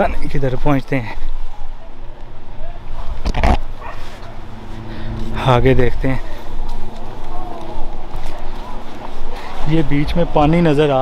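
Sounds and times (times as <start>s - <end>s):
handheld camera rumble: 1.2s - 9.8s
loud bark-like call: 2.6s - 4.9s.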